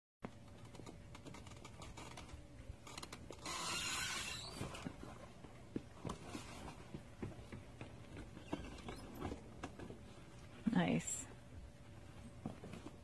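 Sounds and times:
robot costume clicks and creaks: 0.4s - 5.0s, 8.2s - 9.8s.

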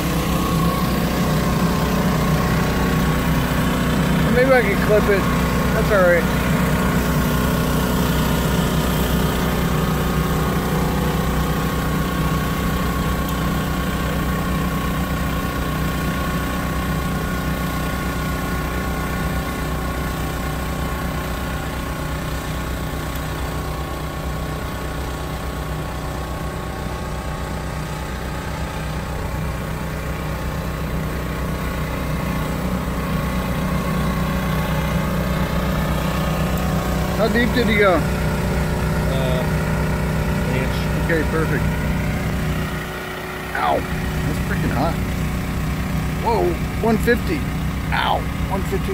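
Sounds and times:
machinery engine drone: 0.0s - 48.9s.

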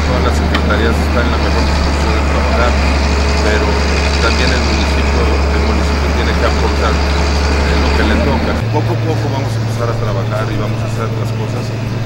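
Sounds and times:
heavy diesel engine drone: 0.0s - 12.0s.

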